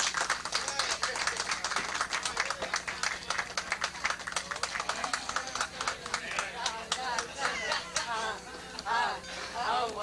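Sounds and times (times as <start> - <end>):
audience applauding: 0.0 - 8.4
people talking: 0.0 - 10.0.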